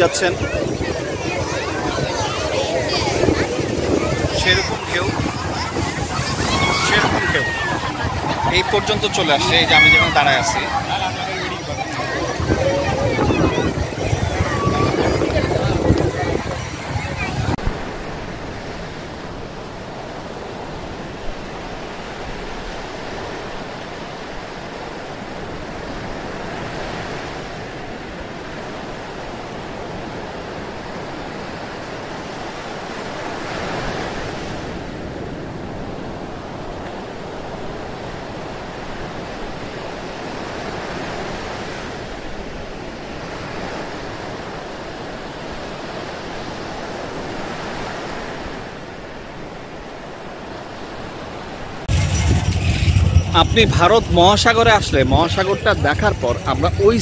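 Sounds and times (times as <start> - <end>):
ocean waves breaking on beach: 0.0 - 57.0.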